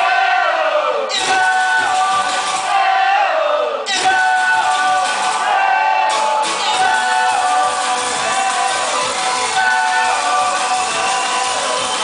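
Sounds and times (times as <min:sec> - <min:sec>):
crowd and band chanting: 0:00.0 - 0:12.0
live band music: 0:03.9 - 0:12.0.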